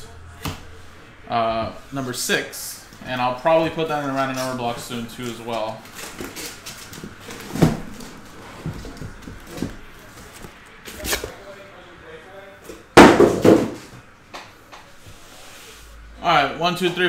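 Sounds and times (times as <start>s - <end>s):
cardboard boxes knocking on table: 13.0s - 13.9s.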